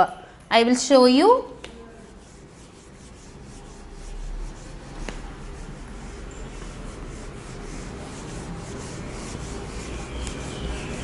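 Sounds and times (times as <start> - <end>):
eraser wiping whiteboard: 1.6 - 11.0.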